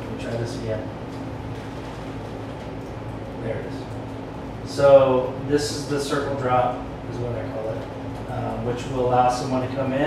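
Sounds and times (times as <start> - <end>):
ventilation hum and hiss: 0.0 - 10.0.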